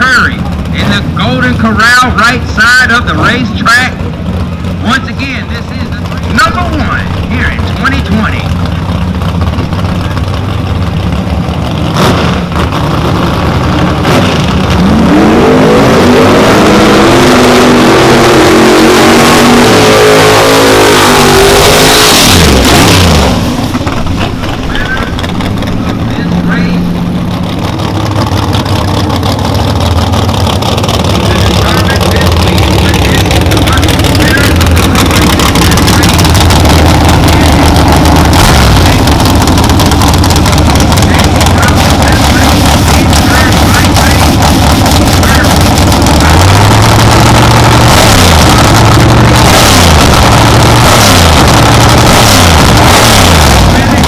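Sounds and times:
engines running steadily: 0:00.0 - 0:54.0
race car engine revving: 0:00.0 - 0:54.0.

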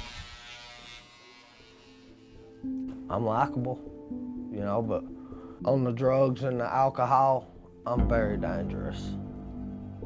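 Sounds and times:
electric hair clippers buzzing: 0:00.0 - 0:02.6.

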